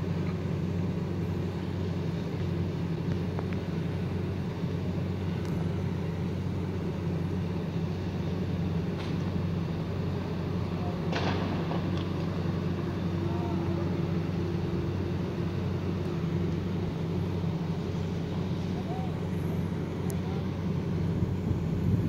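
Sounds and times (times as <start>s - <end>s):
engine idling hum: 0.0s - 22.0s.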